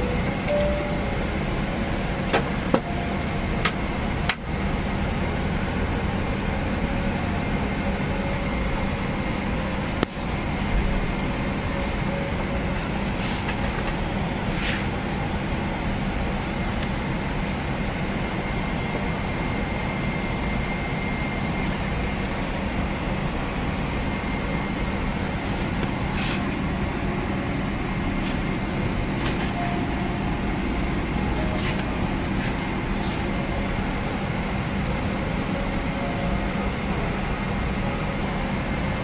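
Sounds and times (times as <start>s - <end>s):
cabin ventilation rushing air: 0.0s - 39.0s.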